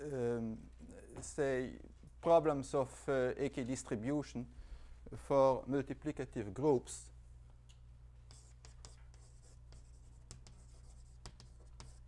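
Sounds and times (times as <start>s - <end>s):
low room hum: 0.0s - 12.0s
chalk tapping and scratching: 8.3s - 12.0s.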